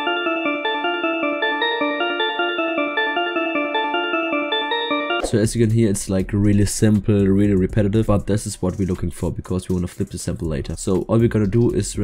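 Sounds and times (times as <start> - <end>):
synthesized bell melody: 0.0 - 5.8.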